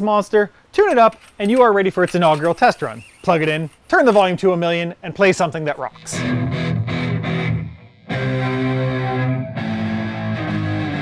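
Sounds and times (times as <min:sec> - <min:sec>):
electric guitar chord ringing: 0:06.1 - 0:11.0.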